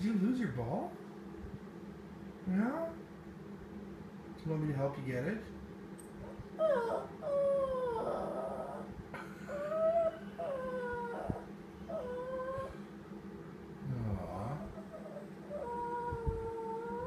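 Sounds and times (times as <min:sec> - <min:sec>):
small dog whining howls: 0:06.2 - 0:08.9, 0:09.5 - 0:12.8, 0:14.6 - 0:17.0.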